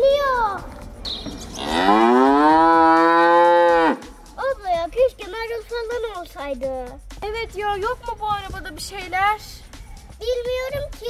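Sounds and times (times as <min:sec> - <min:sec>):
cow mooing: 0:01.6 - 0:04.1.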